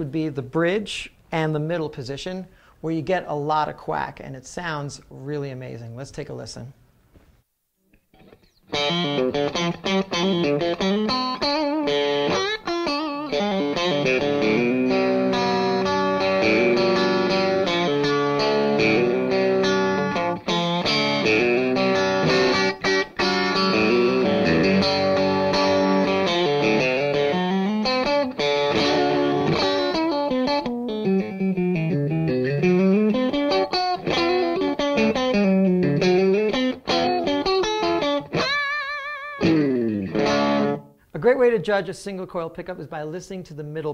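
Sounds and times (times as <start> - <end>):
electric guitar slightly overdriven: 7.1 - 41.1.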